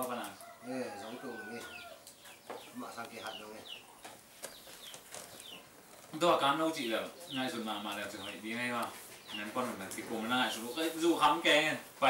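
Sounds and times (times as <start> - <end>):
chickens clucking and peeping: 0.0 - 12.0.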